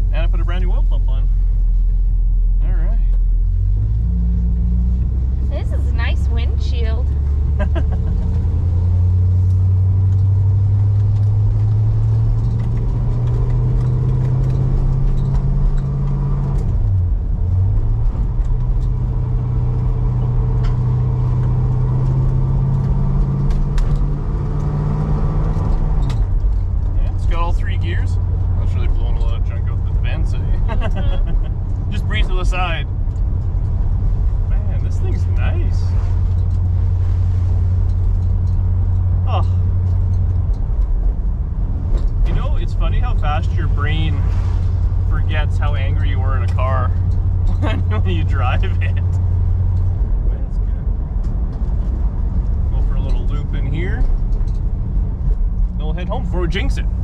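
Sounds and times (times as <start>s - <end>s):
car engine accelerating through gears: 3.1s - 57.0s.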